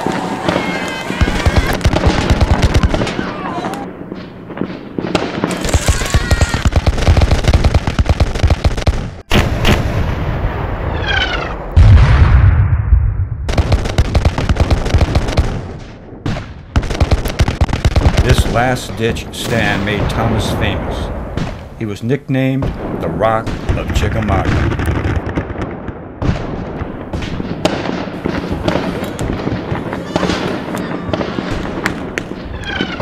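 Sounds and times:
people shouting: 0:00.0 - 0:03.9, 0:05.5 - 0:06.8, 0:29.8 - 0:31.5
musket gunfire: 0:00.0 - 0:10.2, 0:13.5 - 0:18.8, 0:22.6 - 0:33.0.

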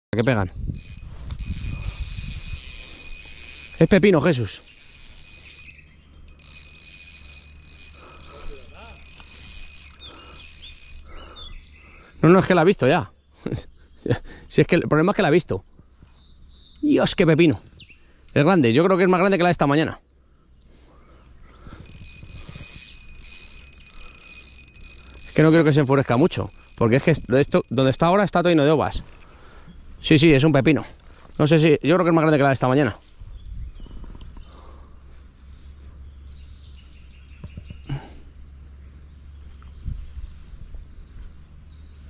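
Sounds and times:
fishing reel ratcheting: 0:00.6 - 0:11.5, 0:21.7 - 0:29.4.

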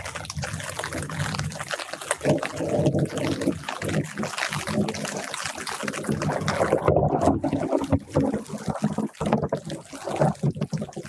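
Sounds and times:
light rain pattering on leaves: 0:00.0 - 0:11.0.

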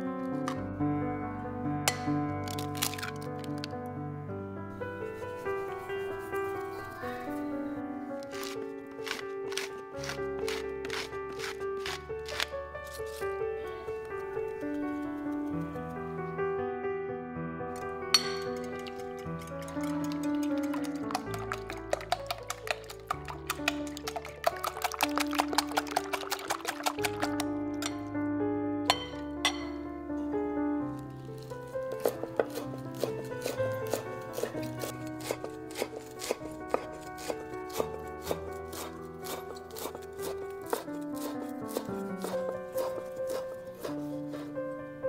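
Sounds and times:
soft background music: 0:00.0 - 0:45.0
knife chopping on wooden board: 0:08.4 - 0:12.5, 0:31.9 - 0:44.5
whisk clicking against glass bowl: 0:18.2 - 0:28.0.

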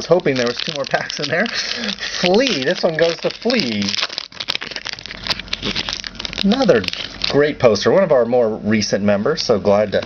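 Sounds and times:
wrapper crinkling and tearing: 0:00.0 - 0:07.6.

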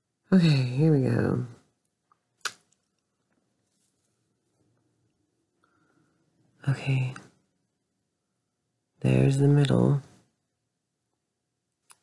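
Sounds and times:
faint handling noise: 0:01.8 - 0:05.8.

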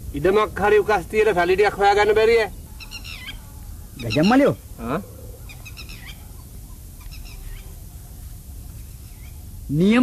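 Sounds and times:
birds chirping faintly: 0:00.0 - 0:10.0.

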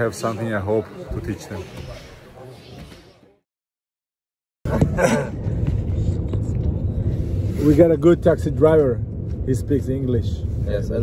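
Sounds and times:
car cabin road and engine rumble: 0:04.7 - 0:11.0.

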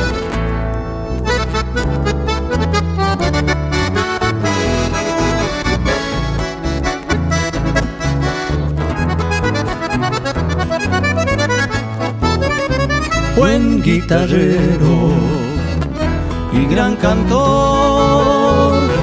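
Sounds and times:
acoustic bass guitar: 0:00.0 - 0:19.0
nylon-string acoustic guitar: 0:00.0 - 0:19.0
piano accordion: 0:00.0 - 0:19.0.

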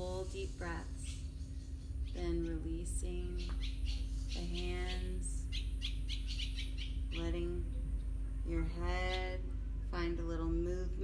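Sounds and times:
bird chirping: 0:00.3 - 0:09.4.

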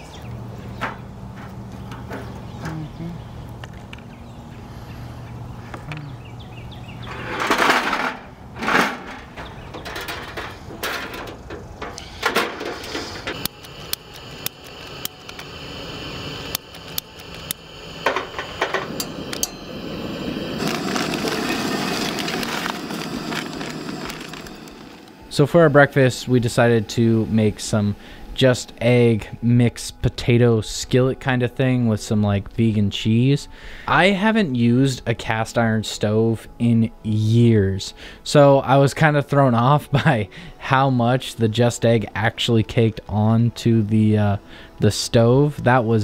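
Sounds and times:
knocks and clatter of stove: 0:07.4 - 0:13.5, 0:18.0 - 0:19.5.

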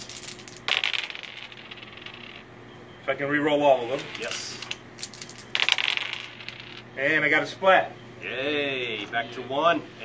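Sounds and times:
dice clattering on a tabletop: 0:00.0 - 0:02.4, 0:04.0 - 0:06.8.

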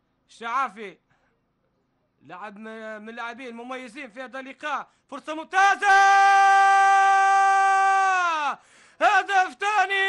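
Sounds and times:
man shouting in commentary: 0:05.4 - 0:10.0.

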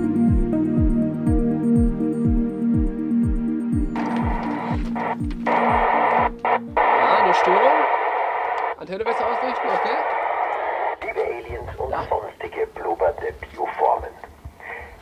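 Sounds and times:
electronic music with bass sweeps: 0:01.4 - 0:08.2
radio static with warbling tones: 0:04.0 - 0:15.0.

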